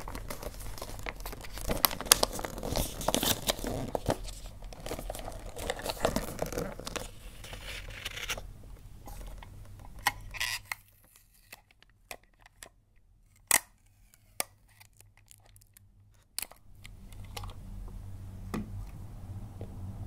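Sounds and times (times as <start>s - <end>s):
wrapping paper rustling: 0.0s - 8.4s.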